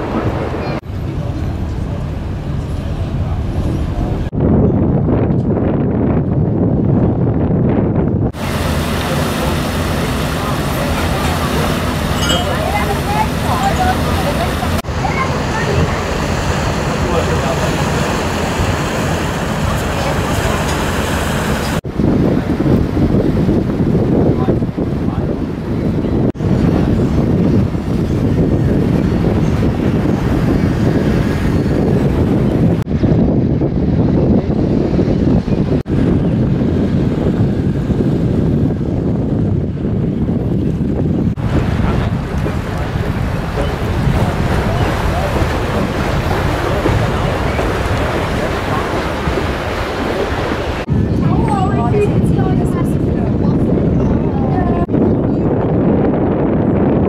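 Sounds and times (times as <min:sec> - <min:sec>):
rushing water: 0:00.0 - 0:04.4, 0:08.3 - 0:33.0, 0:40.4 - 0:55.0
wind buffeting microphone: 0:00.0 - 0:57.0.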